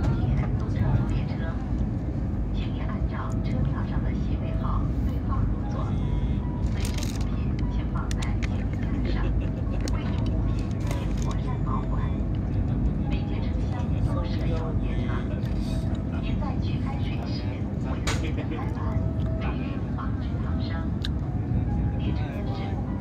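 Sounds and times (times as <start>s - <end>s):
train cabin rumble: 0.0s - 23.0s.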